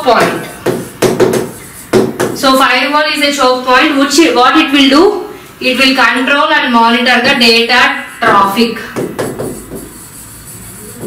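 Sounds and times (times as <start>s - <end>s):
room hum and hiss: 0.0s - 11.0s
woman's voice: 2.4s - 9.0s.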